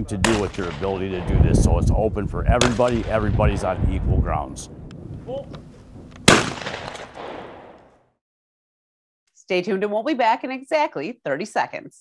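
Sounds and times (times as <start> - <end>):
shotgun shot with echo: 0.2 - 1.5, 2.5 - 3.5, 6.2 - 7.9.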